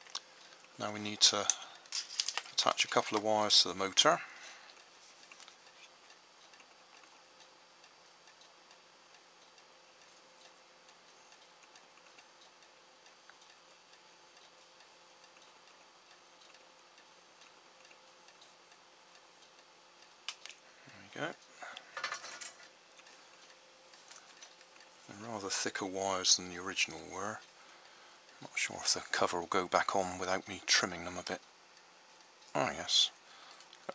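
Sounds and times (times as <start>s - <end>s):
small sharp clicks: 20.2s - 20.6s.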